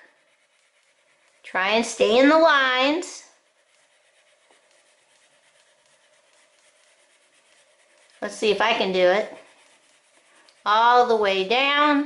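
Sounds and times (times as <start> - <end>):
crayon rubbing on paper: 0.0 - 12.0.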